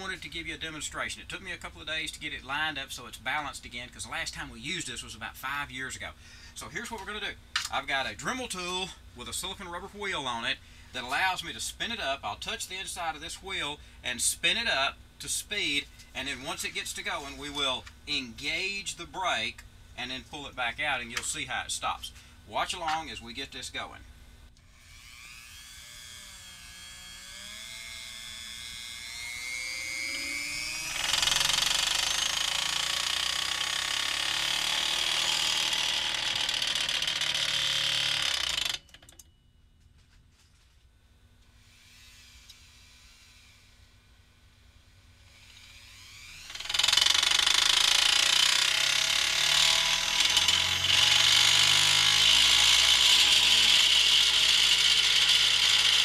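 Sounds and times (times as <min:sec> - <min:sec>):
rotary tool whirring: 0:24.6 - 0:39.4, 0:41.5 - 0:56.0.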